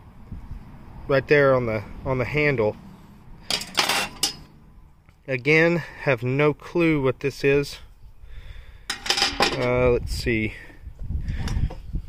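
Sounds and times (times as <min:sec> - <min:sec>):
metal utensils clinking: 0:03.5 - 0:04.5.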